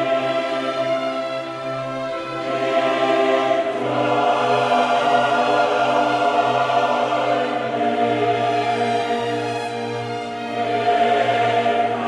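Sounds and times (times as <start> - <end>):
choir singing sustained chords: 0.0 - 12.0.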